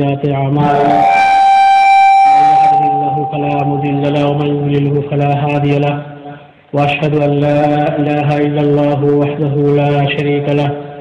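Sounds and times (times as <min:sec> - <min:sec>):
preacher's voice: 0:00.0 - 0:01.2, 0:02.4 - 0:11.0
microphone feedback whistle: 0:00.6 - 0:04.8.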